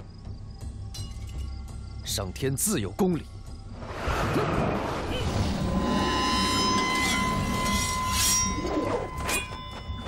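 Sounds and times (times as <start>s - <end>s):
metallic blade ringing: 5.9s - 10.0s.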